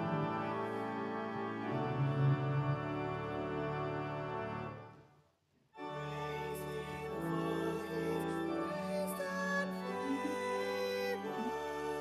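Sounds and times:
pipe organ playing chords: 0:00.0 - 0:05.0, 0:05.8 - 0:12.0.

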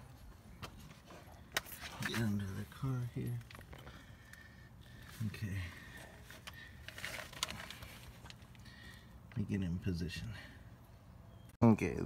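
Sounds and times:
rustling and scraping: 0:05.0 - 0:08.6.

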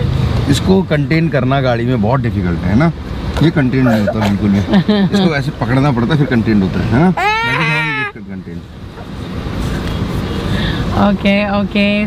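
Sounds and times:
vehicle rumble inside car: 0:00.0 - 0:12.0.

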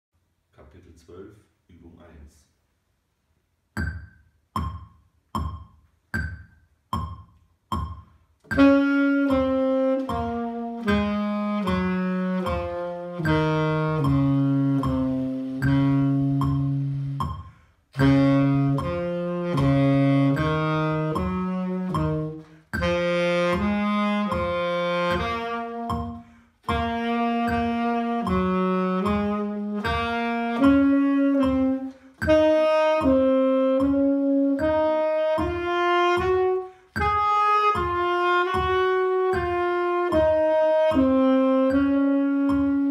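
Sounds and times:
backing track low beat: 0:03.8 - 0:42.9
tenor saxophone playing: 0:08.4 - 0:42.9.

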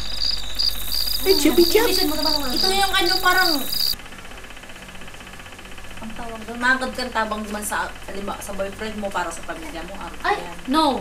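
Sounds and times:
faint fast ticking: 0:00.0 - 0:04.0
steady low hum: 0:00.0 - 0:11.0.

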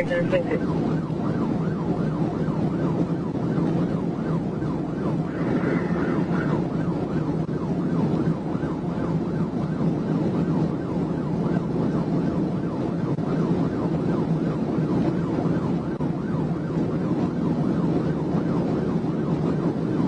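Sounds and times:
police siren yelping: 0:00.0 - 0:20.0
road and wind noise: 0:00.0 - 0:20.0.

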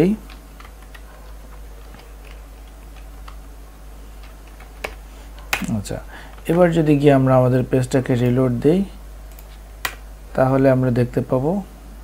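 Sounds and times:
keyboard typing clicks: 0:00.2 - 0:01.1.

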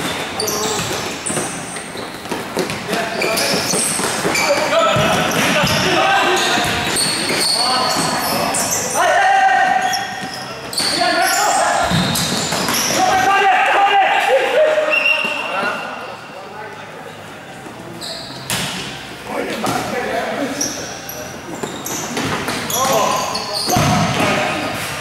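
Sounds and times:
shoes squeaking on court: 0:00.0 - 0:09.0, 0:09.7 - 0:13.0, 0:17.8 - 0:25.0
players shouting: 0:12.8 - 0:15.5.

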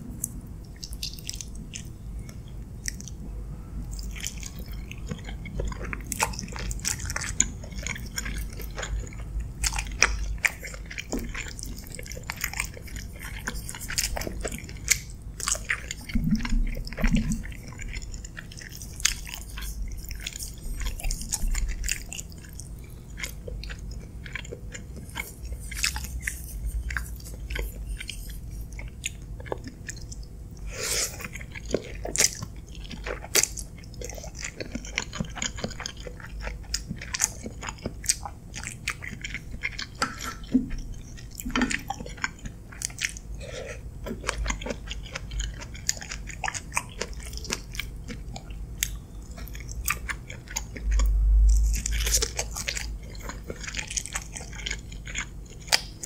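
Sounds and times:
chewing mouth clicks and smacks: 0:00.2 - 0:03.2, 0:03.8 - 0:56.0.

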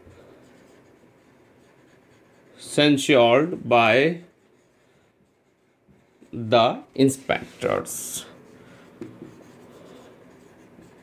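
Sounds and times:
marker writing on whiteboard: 0:00.0 - 0:11.0
man speaking: 0:02.6 - 0:04.3, 0:06.4 - 0:08.4.

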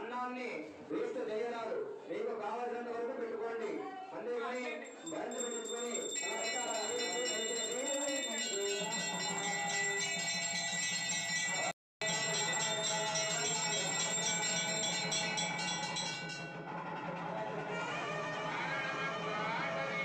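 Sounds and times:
bells ringing fast: 0:04.8 - 0:17.3.

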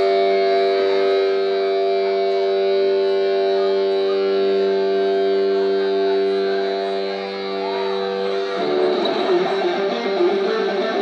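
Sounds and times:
electric guitar fast run: 0:00.0 - 0:11.0.

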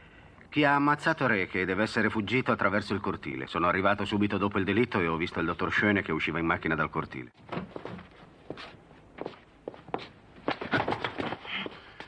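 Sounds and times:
footsteps on hard surface: 0:07.4 - 0:12.0.

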